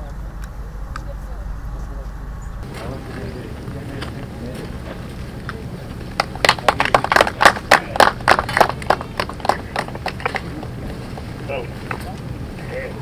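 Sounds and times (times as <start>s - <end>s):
steady low rumble: 0.0s - 13.0s
small group clapping: 5.4s - 11.3s.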